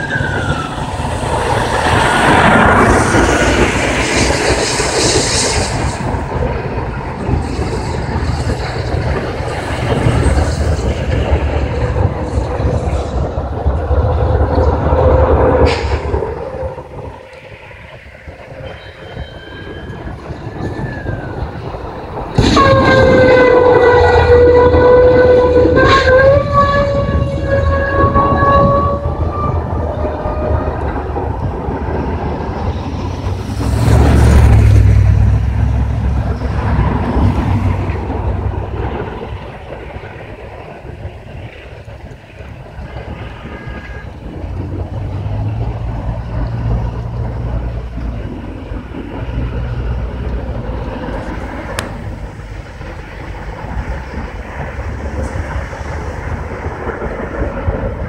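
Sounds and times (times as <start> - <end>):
loud rushing burst: 0.0 - 19.1, 19.9 - 58.0
low rumble: 0.0 - 58.0
single-pitched horn: 22.4 - 31.0, 42.9 - 44.3.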